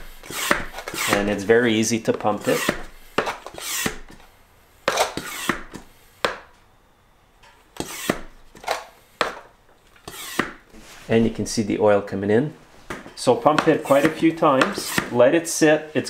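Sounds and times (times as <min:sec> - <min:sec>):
hand pump strokes: 0:00.0 - 0:01.3.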